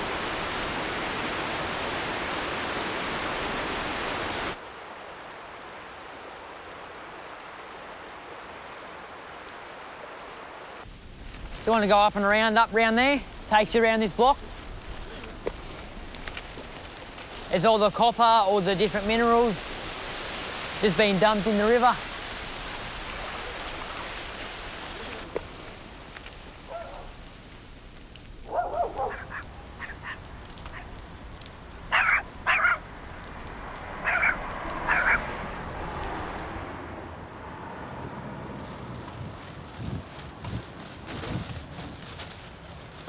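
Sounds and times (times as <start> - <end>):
flowing water rushing: 0.0 - 11.2, 11.9 - 37.3
ducks quacking: 31.9 - 32.9, 33.9 - 35.4.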